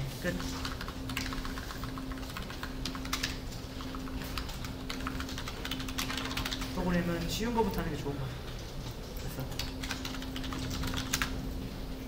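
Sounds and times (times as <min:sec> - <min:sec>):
computer keyboard typing: 0:00.2 - 0:11.5.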